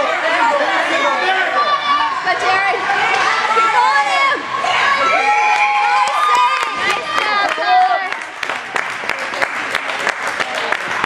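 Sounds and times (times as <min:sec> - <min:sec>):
spectators cheering and shouting: 0:00.0 - 0:08.8.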